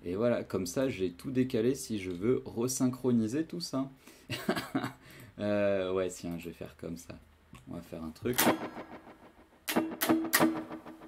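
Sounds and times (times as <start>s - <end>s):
guitar strummed: 8.4s - 11.0s.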